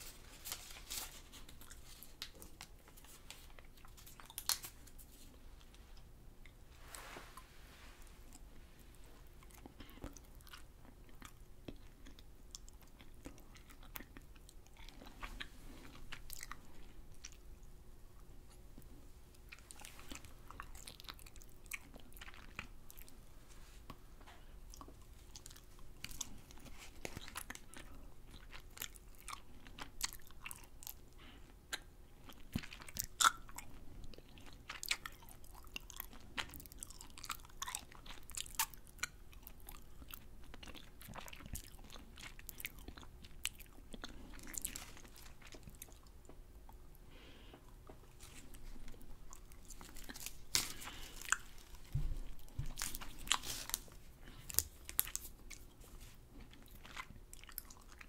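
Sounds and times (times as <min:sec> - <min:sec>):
wet chewing and sucking: 0:24.7 - 0:58.0
lip smacks and mouth clicks: 0:31.7 - 0:33.5.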